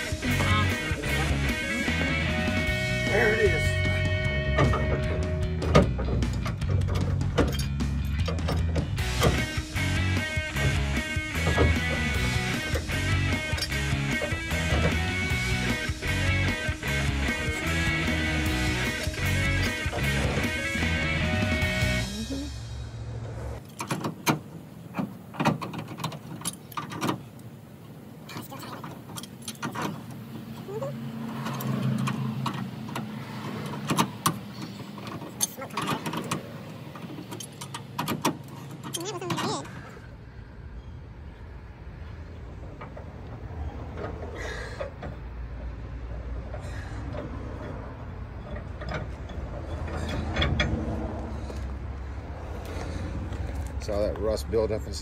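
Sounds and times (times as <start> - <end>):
metal clinks and clanks: 4.6 - 9.7, 31.3 - 39.7, 46.0 - 51.7.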